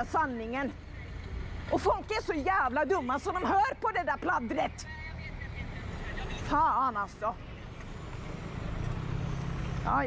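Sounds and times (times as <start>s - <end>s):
van engine driving past: 7.4s - 10.0s.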